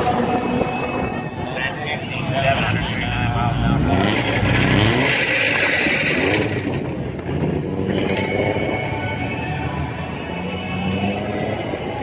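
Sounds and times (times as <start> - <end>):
indistinct voices: 0.0 - 6.8, 7.8 - 12.0
rumble of vehicles: 0.0 - 12.0
car engine running: 2.2 - 8.0.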